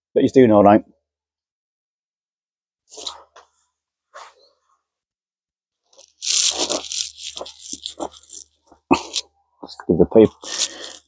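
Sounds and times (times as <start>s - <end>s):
rustling and crackling: 5.9s - 8.9s
man speaking: 9.6s - 10.5s.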